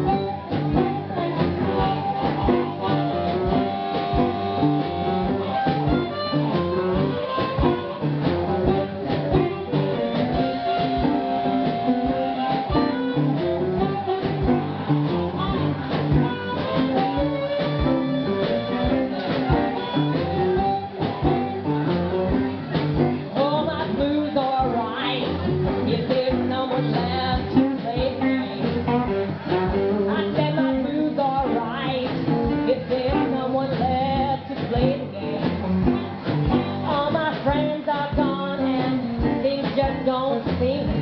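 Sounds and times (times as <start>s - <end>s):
harmonica long notes: 0.0s - 22.6s
drums: 0.0s - 41.0s
electric guitar: 0.0s - 41.0s.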